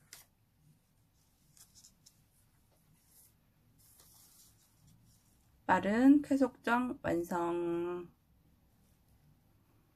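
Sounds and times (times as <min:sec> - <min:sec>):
paper rustling: 0:00.0 - 0:05.5.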